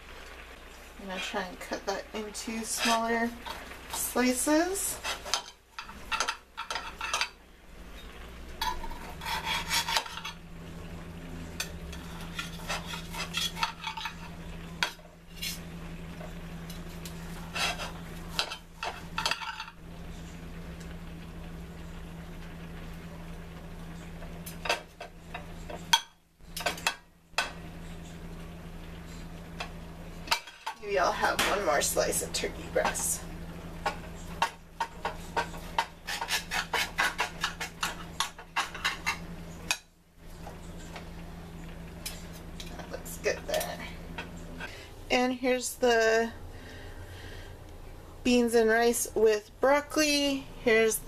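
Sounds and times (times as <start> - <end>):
steady low hum: 0.0 - 51.0
knife and fork scraping plate: 4.9 - 7.4, 8.6 - 10.4, 11.6 - 15.6, 17.3 - 19.8, 34.2 - 39.2.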